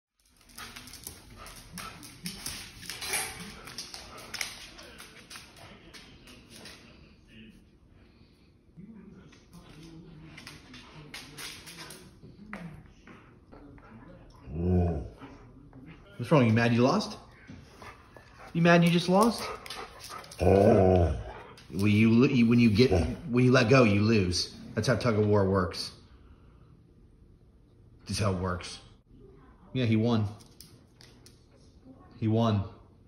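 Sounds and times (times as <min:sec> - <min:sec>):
dogs growling while tugging: 0:20.3 - 0:21.4.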